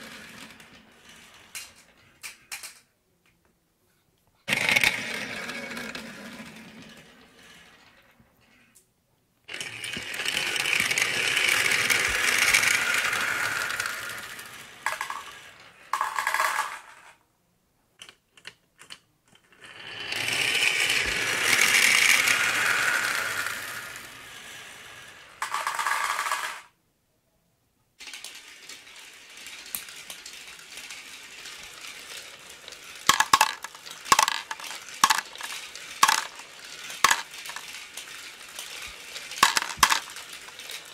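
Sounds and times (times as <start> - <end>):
marbles rolling on plastic tracks: 0.0 - 2.9, 4.5 - 8.2, 9.5 - 17.2, 18.0 - 26.8, 28.0 - 40.9
marbles dropping into plastic truck: 9.9 - 17.1, 25.4 - 26.7, 29.3 - 40.9.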